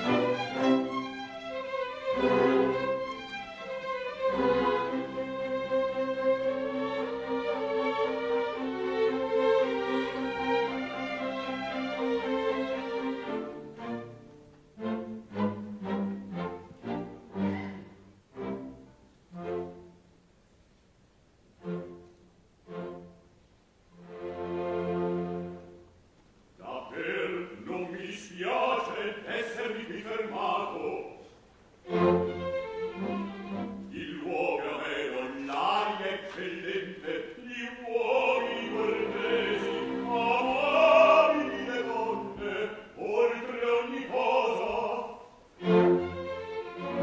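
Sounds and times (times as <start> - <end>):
orchestra strings playing chords: 0.0 - 20.6, 21.4 - 26.0, 27.0 - 47.0.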